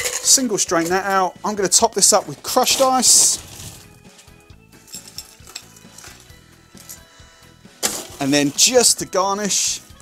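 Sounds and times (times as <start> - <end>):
metal scoop scraping crushed ice: 0.0 - 7.0, 7.8 - 9.8
quiet background music: 0.0 - 10.0.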